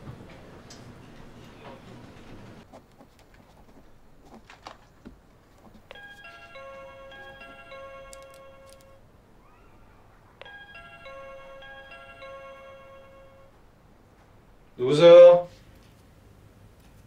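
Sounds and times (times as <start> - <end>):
electronic doorbell chime: 5.9 - 9.0, 10.4 - 13.6.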